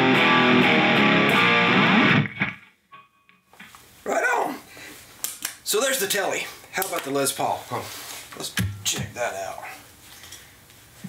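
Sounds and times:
electric guitar notes: 0:00.0 - 0:02.6.

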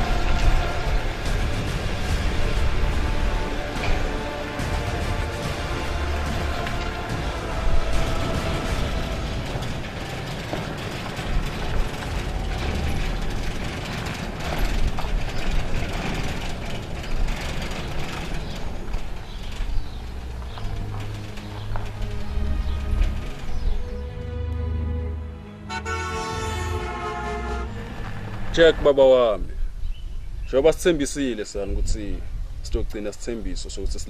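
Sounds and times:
steel gate rolling on track: 0:00.0 - 0:24.3, 0:25.6 - 0:29.4
gate motor gears running: 0:00.0 - 0:24.6.

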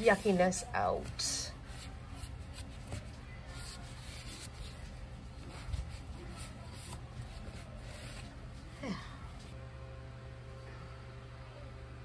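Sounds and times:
paper towel wiping plastic: 0:00.0 - 0:08.7.

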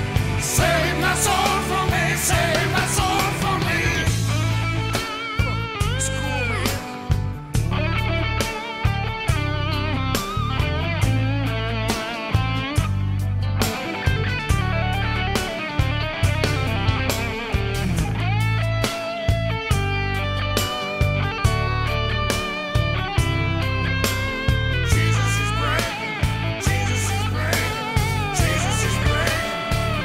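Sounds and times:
bass guitar: 0:00.0 - 0:30.0
drums: 0:00.0 - 0:30.0
electric guitar solo: 0:04.3 - 0:13.0, 0:13.6 - 0:30.0.

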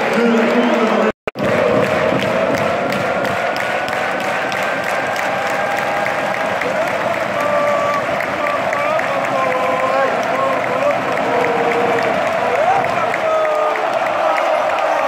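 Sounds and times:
crowd applauding and cheering: 0:00.0 - 0:15.0
rhythmic clapping: 0:00.0 - 0:15.0.

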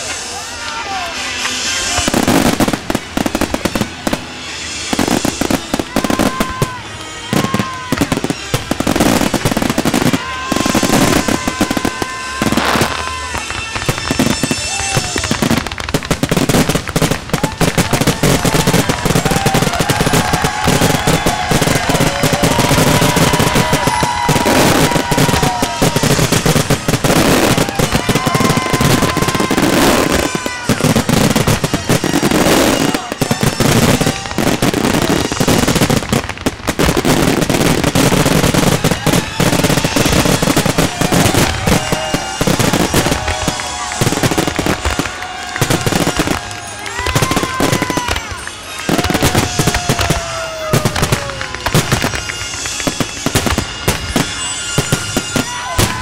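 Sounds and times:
fireworks bangs and crackling: 0:00.0 - 0:56.0.

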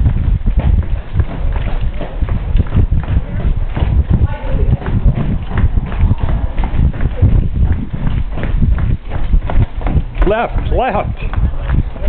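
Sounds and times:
running footsteps on wooden boards: 0:00.0 - 0:12.0.

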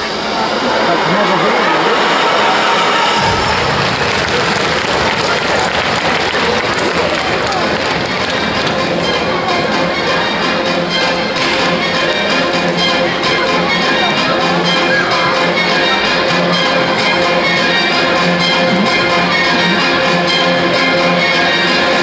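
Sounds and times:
audience applause: 0:00.6 - 0:09.7, 0:18.0 - 0:20.8
band music with steady beat: 0:03.2 - 0:22.0.

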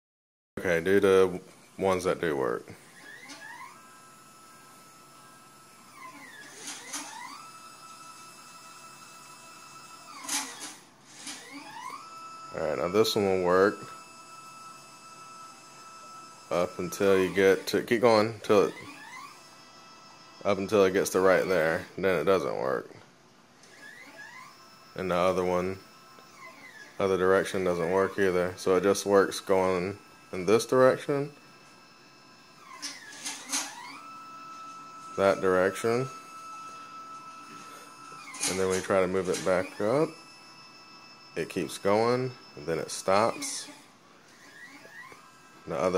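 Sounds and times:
motor whining: 0:01.4 - 0:22.7, 0:23.5 - 0:45.9.

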